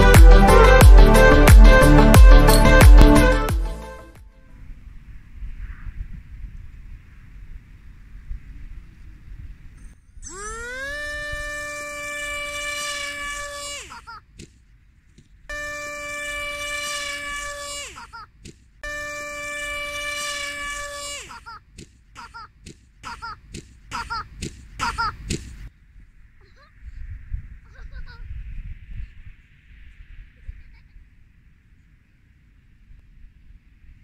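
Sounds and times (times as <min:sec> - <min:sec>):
model plane motor whining: 0:15.5 - 0:17.1
short sharp throttle blips: 0:18.8 - 0:20.9.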